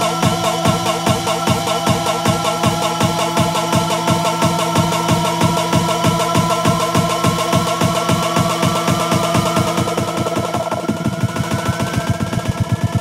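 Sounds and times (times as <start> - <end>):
fast electronic drum hits: 0.0 - 13.0
rising synth tone: 0.0 - 13.0.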